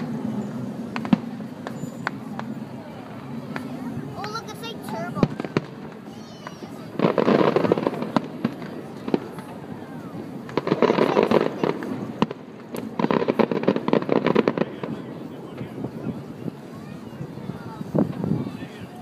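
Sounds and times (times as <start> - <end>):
firework bang: 0.0 - 18.6
fireworks crackling pops: 0.0 - 19.0.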